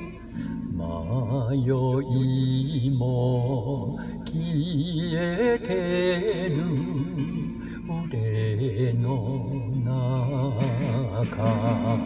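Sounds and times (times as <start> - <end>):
karaoke backing track: 0.0 - 12.0
man singing with vibrato: 0.0 - 12.0.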